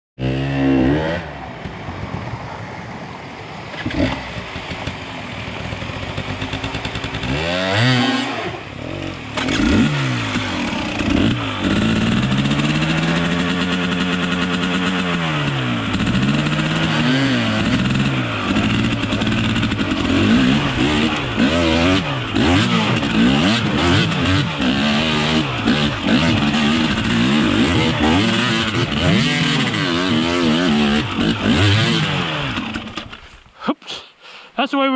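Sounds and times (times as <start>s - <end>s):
dirt bike engine revving: 0.2s - 1.5s, 3.7s - 33.4s.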